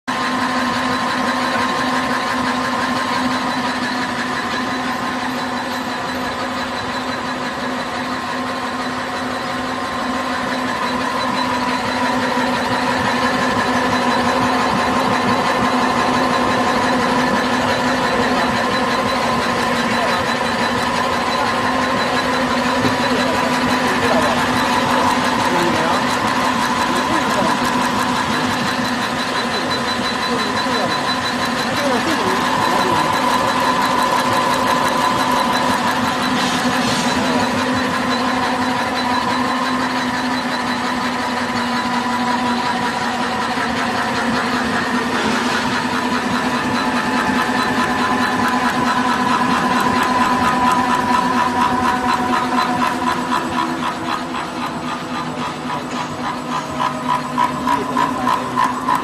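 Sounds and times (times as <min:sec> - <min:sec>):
fast mechanical clatter: 0:00.0 - 0:59.0
machine hum and whine: 0:00.0 - 0:59.0.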